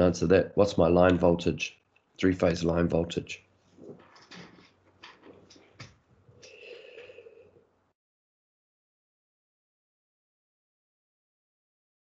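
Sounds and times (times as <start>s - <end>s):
breathy exhale: 6.4s - 7.6s
faint breathing: 6.4s - 7.7s.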